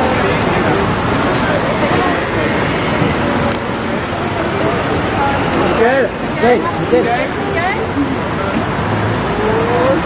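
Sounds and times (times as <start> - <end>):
low crowd voices: 0.0 - 10.0
street traffic noise: 0.0 - 10.0.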